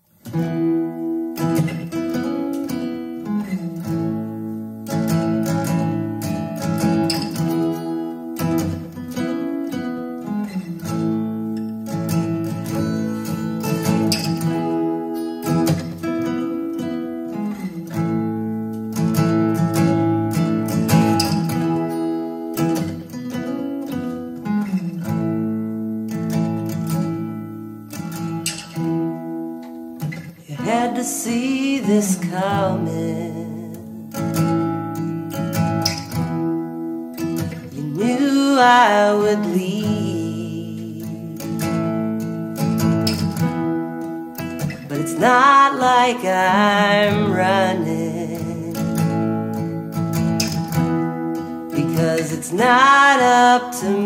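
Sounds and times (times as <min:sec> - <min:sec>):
acoustic guitar picking chords: 0:00.0 - 0:54.0.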